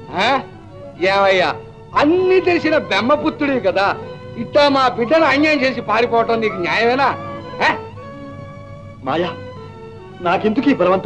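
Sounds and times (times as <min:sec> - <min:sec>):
film score sustained notes: 0:00.0 - 0:11.0
sharp cry sweeping in pitch: 0:06.2 - 0:07.9.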